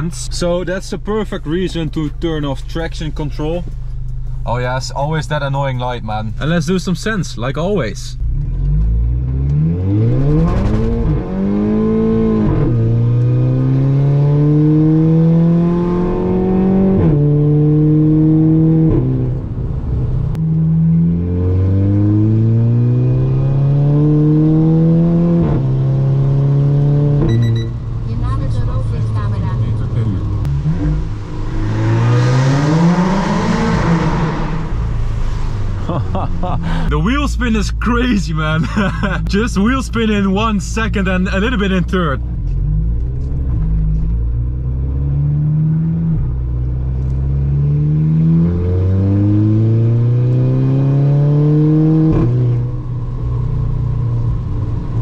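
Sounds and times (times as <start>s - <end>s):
car engine accelerating hard: 8.2s - 55.0s.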